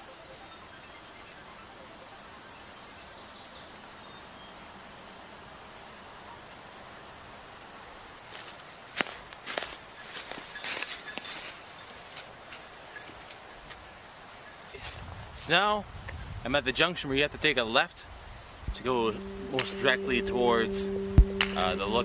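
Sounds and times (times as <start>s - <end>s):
forest ambience hiss: 0.0s - 22.0s.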